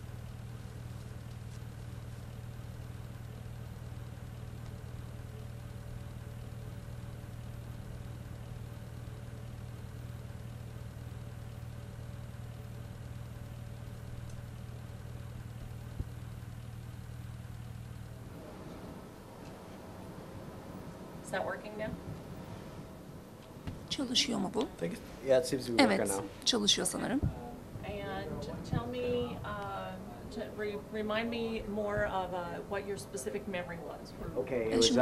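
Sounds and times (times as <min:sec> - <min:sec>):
low vehicle engine drone: 0:00.0 - 0:35.0.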